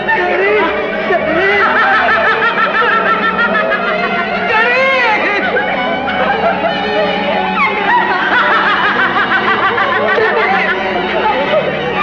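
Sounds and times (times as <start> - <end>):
man's high-pitched laughter: 0.1 - 11.8.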